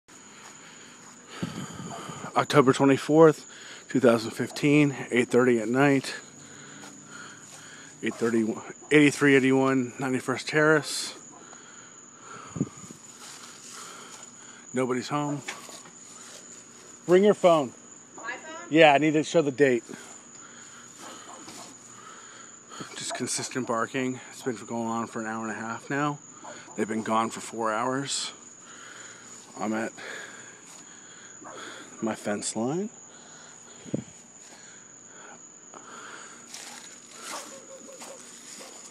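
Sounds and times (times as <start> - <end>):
faint outdoor background noise: 0.0 - 38.9
insects trilling: 0.1 - 38.9.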